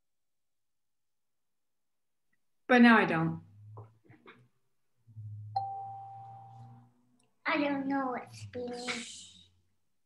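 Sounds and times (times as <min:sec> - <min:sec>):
low hum: 0:05.0 - 0:07.2
chime-like tone: 0:05.2 - 0:06.8.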